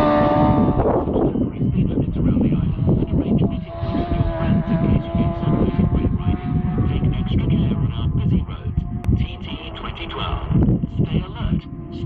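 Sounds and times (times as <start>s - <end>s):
motorcycle engine high note: 0.0s - 1.6s
wind buffeting microphone: 0.0s - 12.0s.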